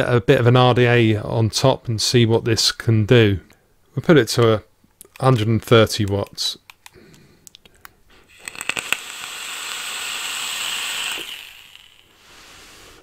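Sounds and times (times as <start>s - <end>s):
vape coil hissing sizzle: 8.2s - 13.0s.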